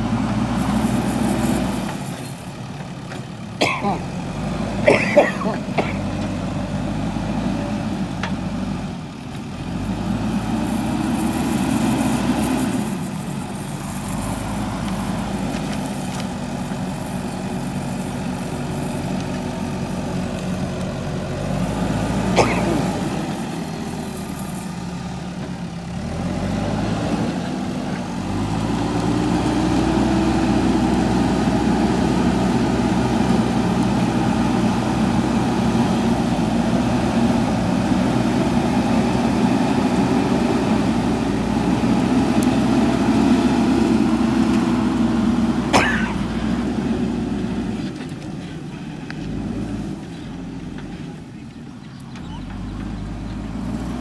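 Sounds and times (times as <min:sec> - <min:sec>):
backhoe diesel engine revving: 0:00.0 - 0:54.0.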